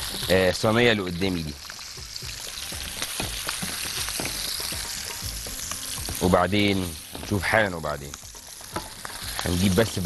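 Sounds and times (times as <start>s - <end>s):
chicken sizzling in hot oil: 0.0s - 10.0s.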